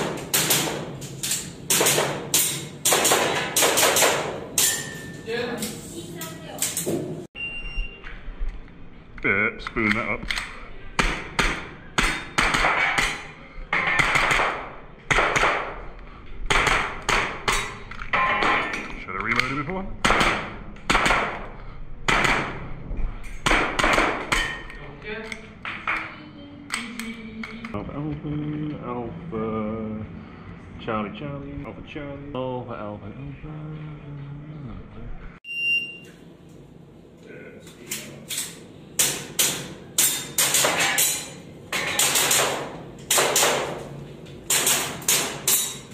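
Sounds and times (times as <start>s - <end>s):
pistol shots in small room: 0.0s - 5.0s, 11.0s - 18.8s, 20.0s - 22.7s, 23.4s - 24.7s, 38.3s - 43.9s, 44.5s - 45.8s.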